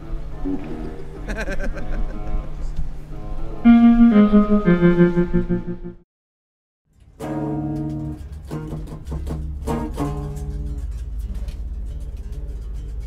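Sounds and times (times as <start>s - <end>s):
low amplifier hum: 0.0s - 6.0s
plucked amplified string notes: 3.6s - 6.0s, 6.9s - 12.9s.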